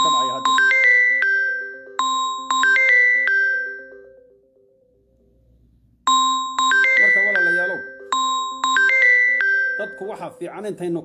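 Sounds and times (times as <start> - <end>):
chiming synthesizer music: 0.0 - 5.4, 6.1 - 11.0.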